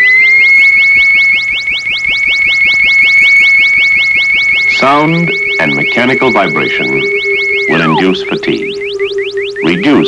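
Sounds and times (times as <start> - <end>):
lower steady electronic tone: 0.0 - 10.0
rising electronic tone with chirps: 0.0 - 10.0.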